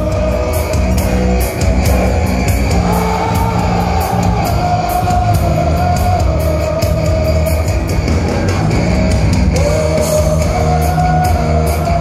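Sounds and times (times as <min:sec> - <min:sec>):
heavy metal band playing: 0:00.0 - 0:12.0.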